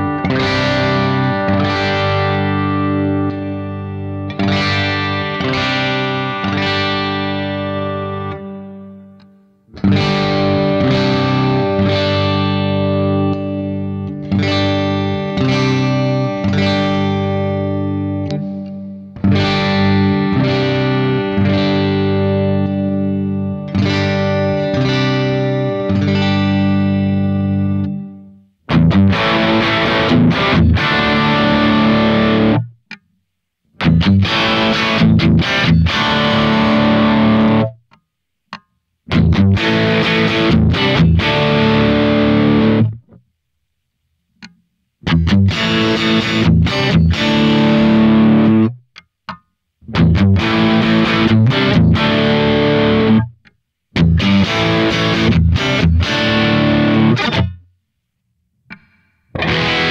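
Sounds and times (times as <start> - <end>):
distorted electric guitar riffs: 0.0 - 33.0, 33.7 - 38.0, 39.0 - 43.2, 44.4 - 57.7, 58.7 - 59.9.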